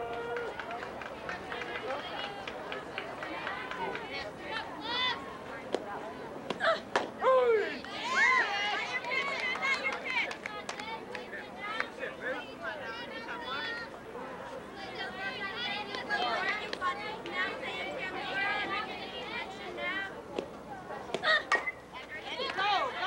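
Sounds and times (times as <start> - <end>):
people calling and chattering: 0.0 - 23.0.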